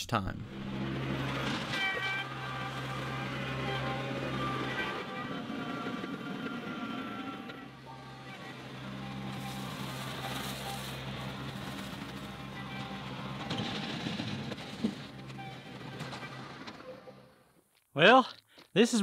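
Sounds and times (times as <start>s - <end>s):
background music: 0.0s - 17.0s
tractor diesel engine running: 0.4s - 17.4s.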